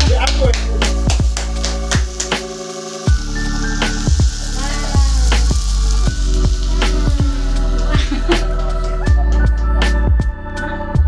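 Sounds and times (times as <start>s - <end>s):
music with bass and drum beat: 0.0s - 11.0s.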